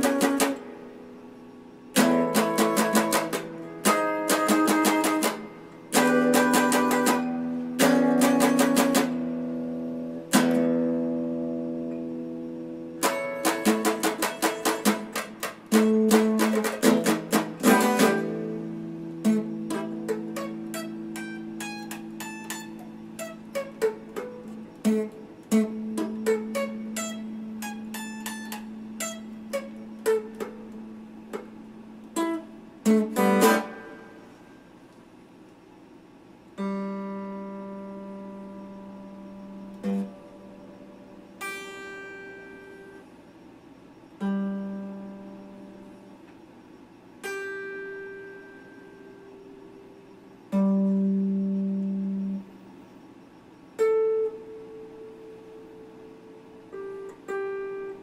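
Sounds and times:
electric guitar playing: 0.0 - 34.6, 36.6 - 43.0, 44.2 - 46.1, 47.2 - 52.6, 53.8 - 58.0.

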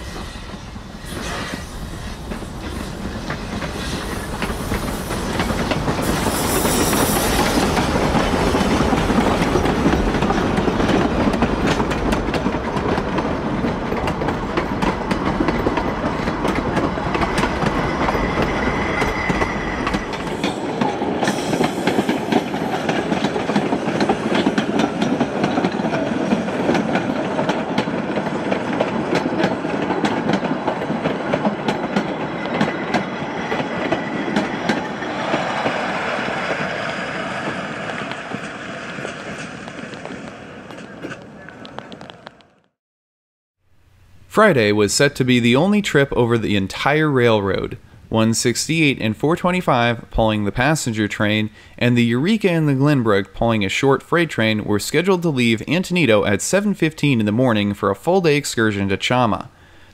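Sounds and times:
high wheel squeal: 0.0 - 7.8, 16.6 - 22.3
steam train passing: 0.0 - 42.6, 44.3 - 59.9
wheels clacking over rail joints: 2.2 - 42.5.

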